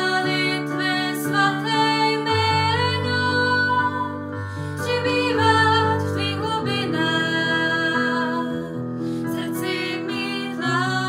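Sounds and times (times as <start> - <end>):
person singing slow worship song: 0.0 - 11.0.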